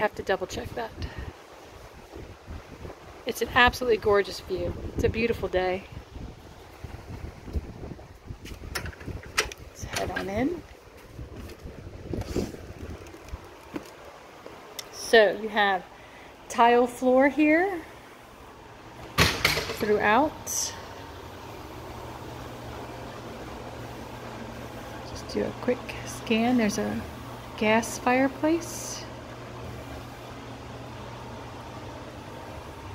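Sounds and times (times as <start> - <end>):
oven hum and fan noise: 0.0 - 32.9
wind buffeting microphone: 0.7 - 13.7.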